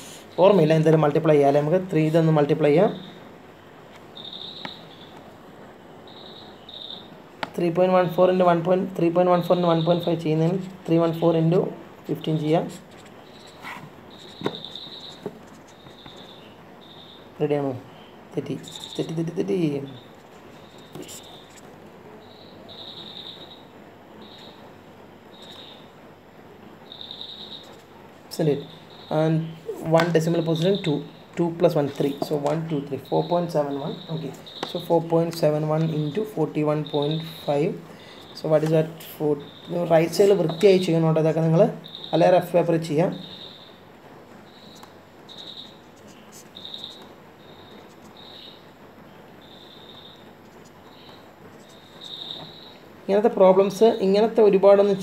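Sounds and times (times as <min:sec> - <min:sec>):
faint room noise: 0:00.0 - 0:55.0
insect chirping trills: 0:02.8 - 0:07.2, 0:12.1 - 0:54.9
marker writing on paper: 0:12.7 - 0:16.5, 0:18.6 - 0:19.2, 0:20.1 - 0:21.8, 0:31.7 - 0:32.8, 0:40.1 - 0:40.7, 0:44.7 - 0:47.1, 0:47.7 - 0:48.2.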